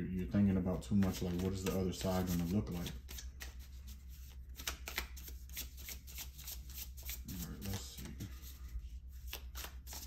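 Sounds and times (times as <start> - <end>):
low steady hum: 0.0 - 10.0
cards being shuffled: 1.0 - 10.0.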